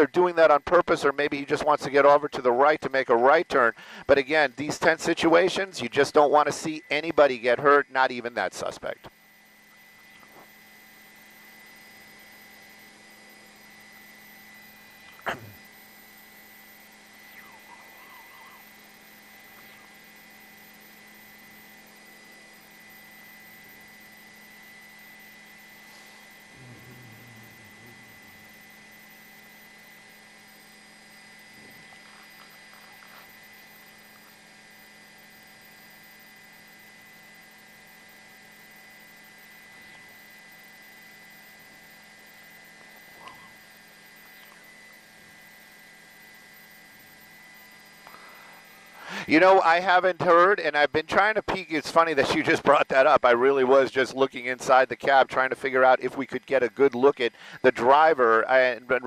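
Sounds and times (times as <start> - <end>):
faint electrical hum: 0.0 - 59.0.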